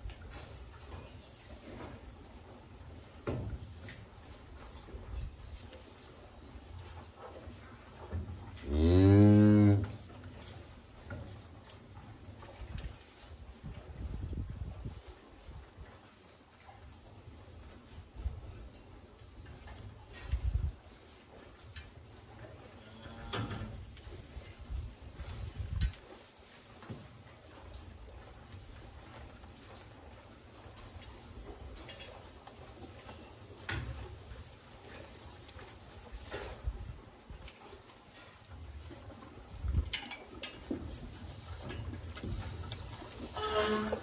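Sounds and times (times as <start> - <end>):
cow hooves thumping: 0.0 - 22.6, 23.3 - 44.0
rustling on straw: 23.7 - 44.0.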